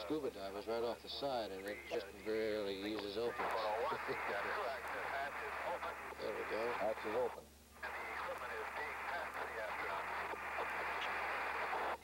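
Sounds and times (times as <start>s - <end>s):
radio static: 1.1s - 12.0s
voice over two-way radio: 3.0s - 12.0s.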